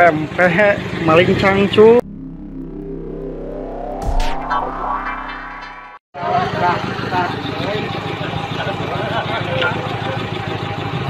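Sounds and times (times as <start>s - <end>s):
electronic logo jingle: 2.0s - 6.0s.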